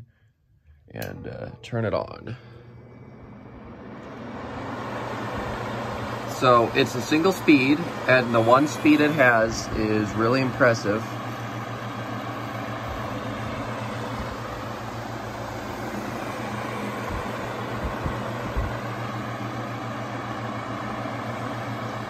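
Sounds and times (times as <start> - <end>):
table fan running: 0.0 - 22.0.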